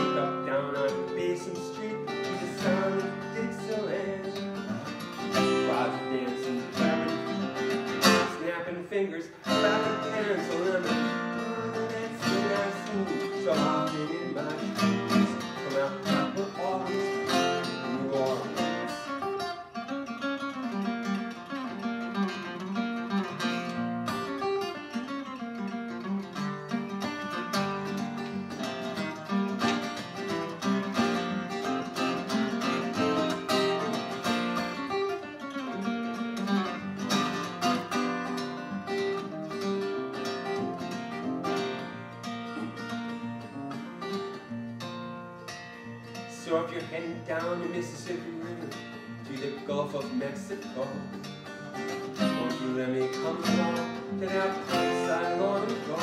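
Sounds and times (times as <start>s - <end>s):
acoustic guitar: 0.0s - 56.0s.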